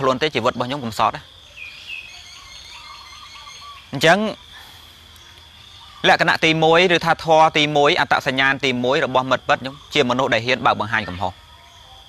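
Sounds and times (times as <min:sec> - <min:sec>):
faint bird calls: 0:00.0 - 0:12.0.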